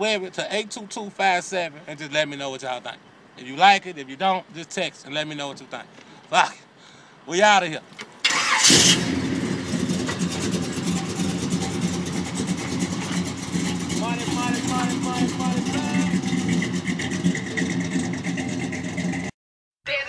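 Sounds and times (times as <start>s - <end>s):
car engine idling and pulling away: 0.0s - 7.2s, 7.8s - 19.3s
voices: 0.0s - 8.5s, 13.8s - 16.2s.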